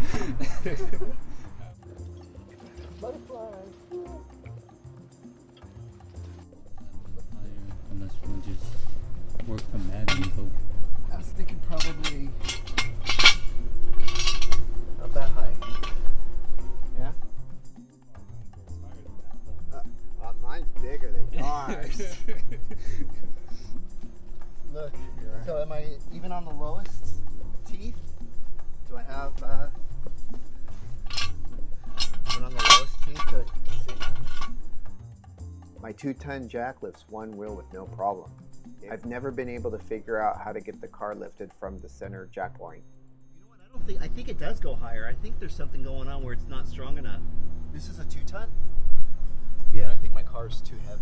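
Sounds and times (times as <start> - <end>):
backing music: 0.0 - 51.0
metal-on-metal scrape: 9.8 - 10.6, 11.5 - 16.8, 30.6 - 35.0
metal jack stand clinking: 10.0 - 10.6, 11.5 - 16.2, 30.9 - 34.9.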